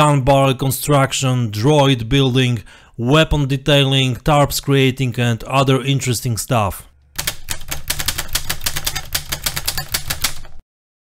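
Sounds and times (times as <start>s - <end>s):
rapid sharp clicks: 7.2s - 10.6s.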